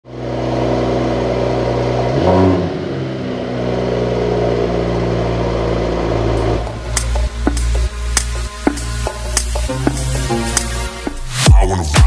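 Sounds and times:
car engine idling: 0:00.1 - 0:10.8.

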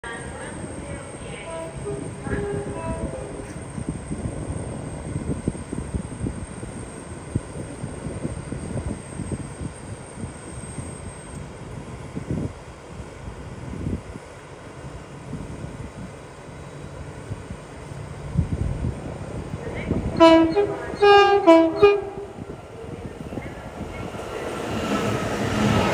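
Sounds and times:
freight train rumbling: 0:00.0 - 0:25.9.

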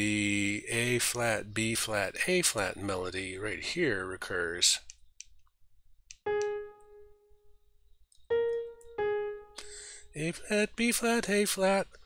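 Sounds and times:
piano notes: 0:06.2 - 0:07.6, 0:08.2 - 0:10.3.

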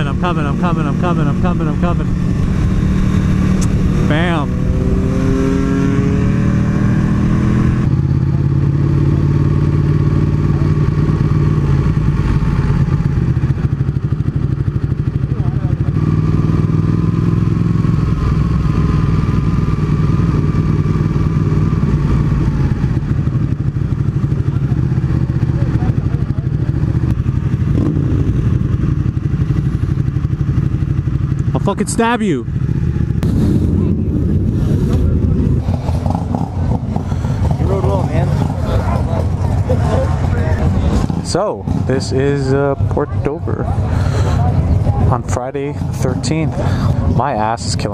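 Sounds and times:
motorcycle engine: 0:00.0 - 0:47.9.

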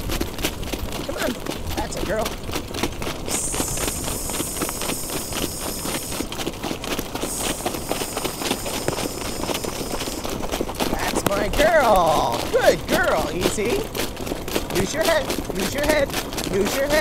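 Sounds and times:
hoofbeats of trotting horses: 0:00.0 - 0:17.0
wind rumbling on microphone: 0:00.0 - 0:17.0
high hiss: 0:03.3 - 0:06.3, 0:07.2 - 0:10.4.

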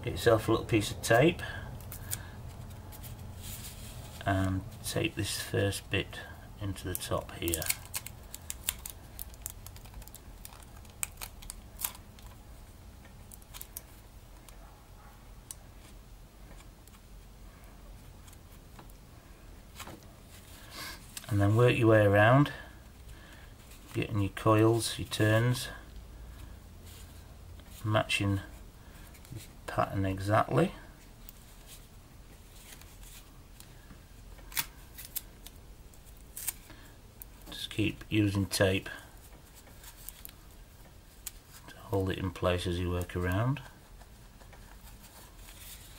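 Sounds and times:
tape clicks and crackles: 0:06.7 - 0:14.6, 0:34.3 - 0:37.6, 0:39.2 - 0:41.7, 0:42.9 - 0:45.9.

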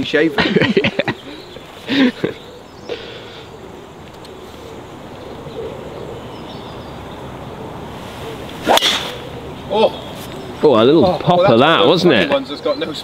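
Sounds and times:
golf club striking ball: 0:08.6 - 0:09.3.

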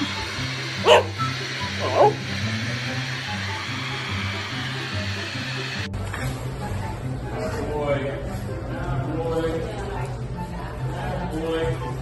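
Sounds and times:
dog barking: 0:00.8 - 0:01.2, 0:01.8 - 0:02.2.

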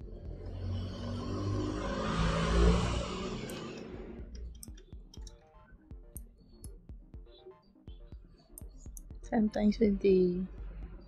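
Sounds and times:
motor vehicle passing by: 0:00.0 - 0:04.3.

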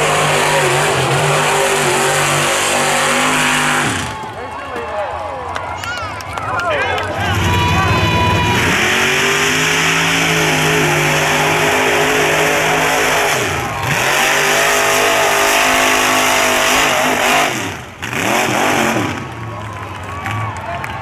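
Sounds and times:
engine revving high: 0:00.0 - 0:04.2, 0:07.2 - 0:19.4.

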